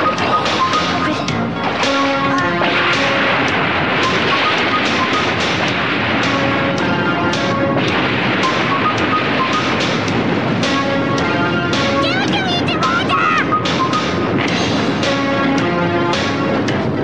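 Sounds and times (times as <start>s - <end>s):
held synth notes: 0.0s - 16.8s.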